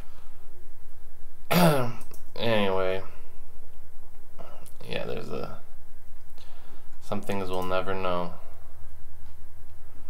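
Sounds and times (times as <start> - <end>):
man clearing throat: 1.5 - 2.1.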